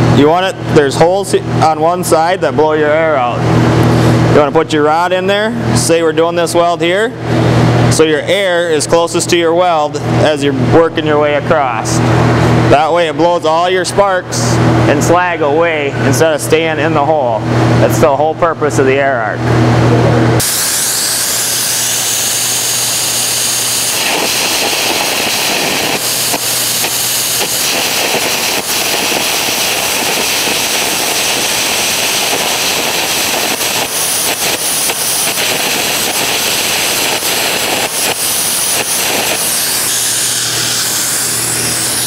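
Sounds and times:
compressed air blast: 20.4 - 42.0
electric arc crackling: 20.4 - 42.0.

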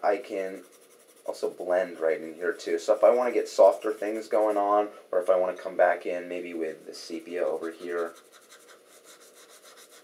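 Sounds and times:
crayon scratching on paper: 0.3 - 1.7, 2.8 - 4.6, 7.0 - 10.0.

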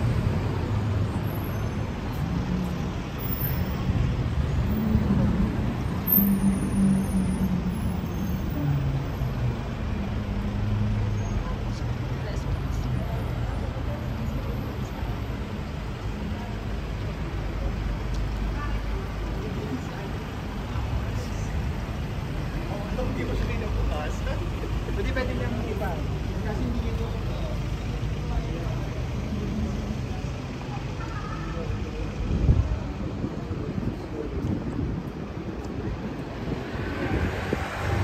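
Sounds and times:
traffic rumble: 0.0 - 38.0
people talking: 16.2 - 21.8, 22.5 - 35.0.

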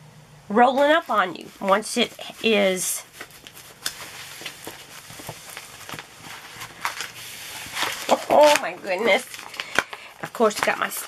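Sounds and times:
plastic film rustling: 0.7 - 11.0.

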